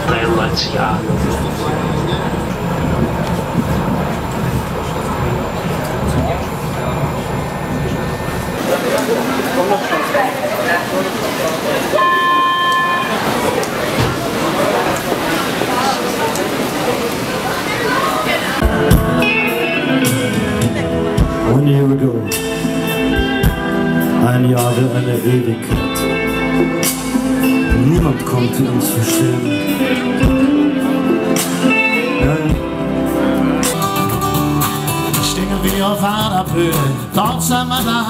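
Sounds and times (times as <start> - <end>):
train rumbling: 0.0 - 19.2
voices at station: 0.0 - 38.0
electronic signal tone: 11.9 - 13.6
live band music: 18.6 - 38.0.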